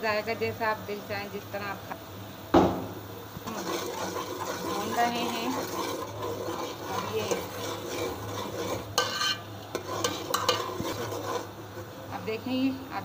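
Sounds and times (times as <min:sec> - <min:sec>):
paste sizzling in oil: 0:02.8 - 0:12.5
metal ladle scraping a pot: 0:03.4 - 0:12.0.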